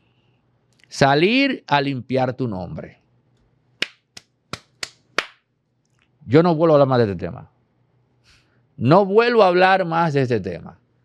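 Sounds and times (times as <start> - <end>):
hands clapping: 3.8 - 5.5.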